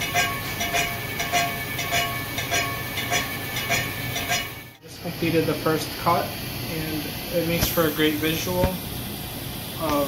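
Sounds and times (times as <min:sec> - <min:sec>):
milling machine fly cutter striking metal: 0:00.0 - 0:04.8.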